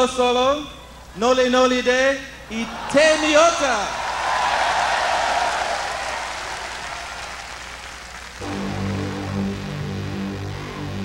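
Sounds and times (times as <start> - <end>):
audience applauding and cheering: 2.6 - 9.4
band playing low sustained notes: 8.4 - 11.0.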